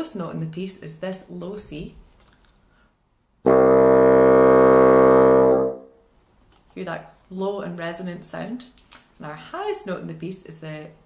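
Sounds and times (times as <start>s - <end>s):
bassoon sustained low note: 3.5s - 5.9s.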